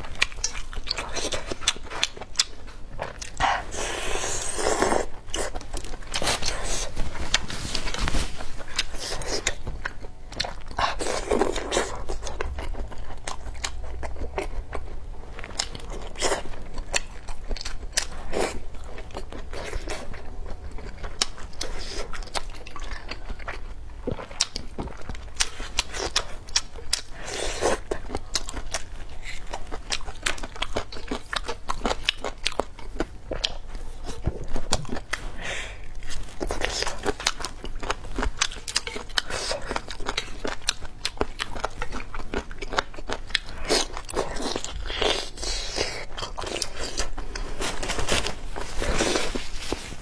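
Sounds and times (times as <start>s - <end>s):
chewing food: 0.0s - 50.0s.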